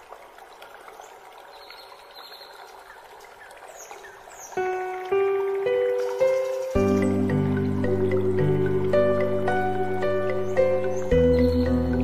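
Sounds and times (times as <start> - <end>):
water trickling: 0.0 - 12.0
relaxation music ringing notes: 4.4 - 12.0
bird chirps: 10.1 - 12.0.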